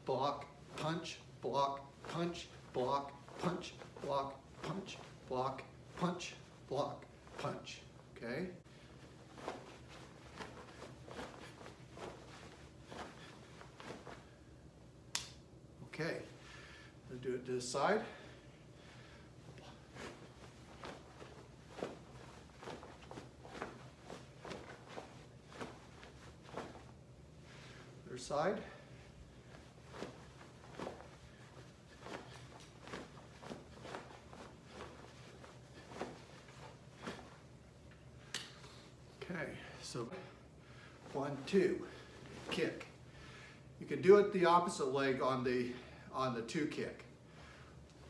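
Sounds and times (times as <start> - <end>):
clothing swishes: 0.0 - 14.6, 19.0 - 39.2, 40.1 - 43.1
sharp click: 15.1 - 15.4.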